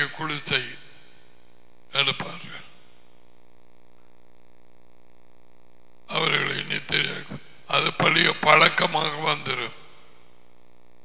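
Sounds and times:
man talking: 0.0 - 0.9, 2.0 - 2.8, 6.1 - 10.0.

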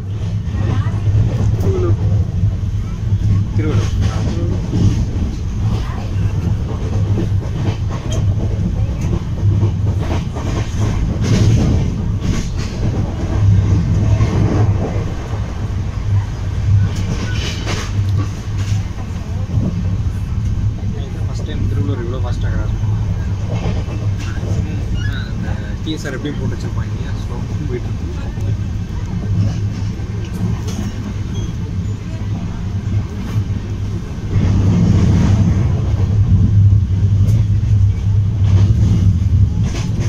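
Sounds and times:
train wheels rumbling on rail: 0.0 - 40.0
rail joint clicks and knocks: 0.1 - 40.0.

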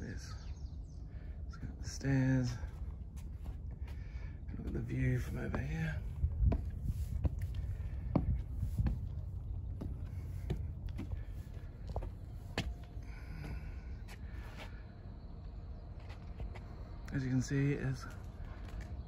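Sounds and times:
footsteps on stone stairs: 2.6 - 14.8
wind on microphone: 4.5 - 12.0.

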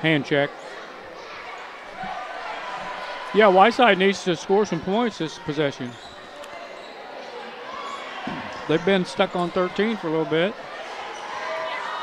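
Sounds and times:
gym crowd murmur: 0.0 - 12.0.

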